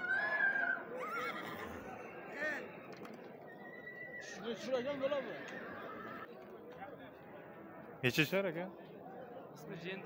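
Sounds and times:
horse whinnying: 0.0s - 1.9s.

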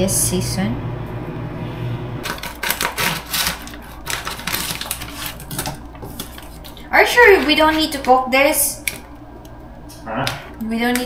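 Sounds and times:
plastic pouch crinkling: 2.2s - 6.9s.

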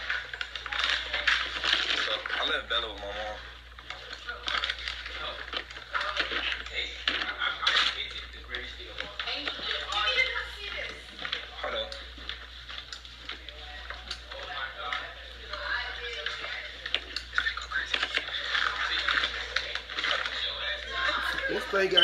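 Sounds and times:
faint background music: 0.0s - 22.0s
muffled voices: 0.0s - 22.0s.

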